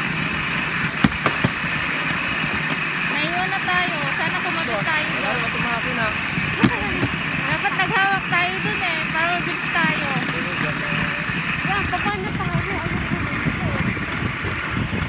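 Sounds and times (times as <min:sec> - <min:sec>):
rail trolley rumbling on track: 0:00.0 - 0:15.0.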